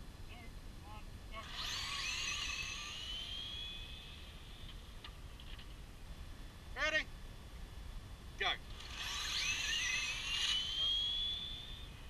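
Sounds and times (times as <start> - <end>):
short calls: 1.4 - 5.0, 8.4 - 12.0
electric motor whine rising: 1.4 - 5.2, 8.7 - 12.0.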